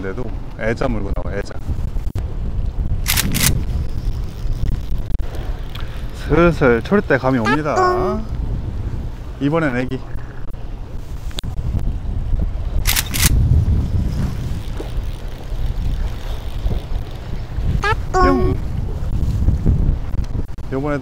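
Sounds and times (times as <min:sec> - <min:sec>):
wind buffeting microphone: 0:00.0 - 0:21.0
sharp clicks: 0:03.0 - 0:03.6, 0:12.8 - 0:13.4
brief voice: 0:17.8 - 0:18.6.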